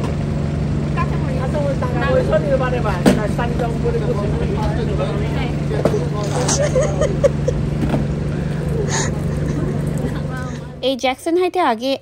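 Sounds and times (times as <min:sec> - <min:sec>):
low engine hum: 0:00.0 - 0:11.2
faint chatter: 0:01.0 - 0:11.2.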